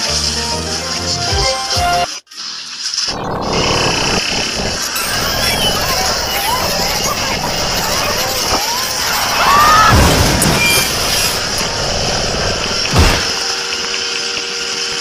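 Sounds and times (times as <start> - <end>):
cartoon sound effects: 3.5 - 11.6
sharp hit: 9.7 - 13.8.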